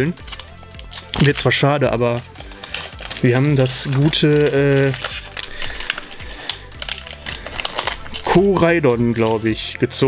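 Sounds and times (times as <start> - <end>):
foil wrapper crinkling and tearing: 0.0 - 10.0.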